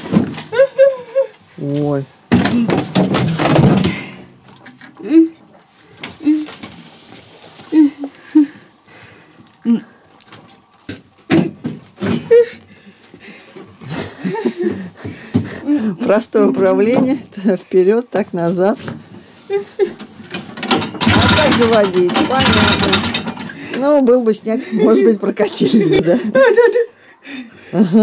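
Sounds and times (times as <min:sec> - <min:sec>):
person's wordless vocal sounds: 0:09.6 - 0:10.0
clicks and knocks of engine parts: 0:19.9 - 0:23.9.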